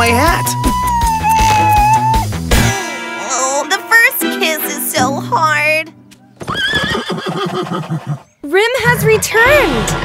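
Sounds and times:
cartoon unicorn whinnying: 0.0 - 2.3.

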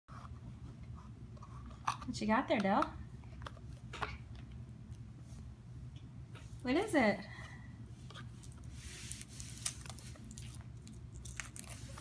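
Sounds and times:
foil and cardboard crinkling: 8.4 - 12.0.

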